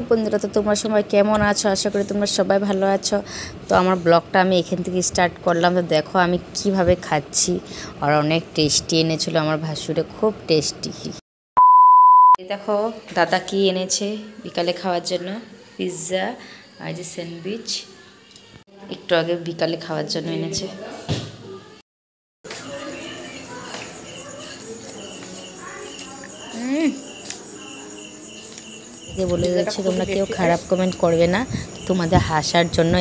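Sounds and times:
woman talking: 0.0s - 11.2s, 12.4s - 18.0s, 18.7s - 21.0s, 22.5s - 33.0s
censor bleep tone: 11.6s - 12.4s
crickets chirping: 22.5s - 33.0s.

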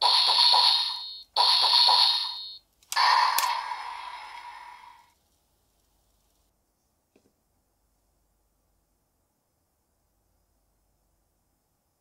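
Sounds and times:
toy high-pitched electronic sound effect: 0.0s - 5.1s.

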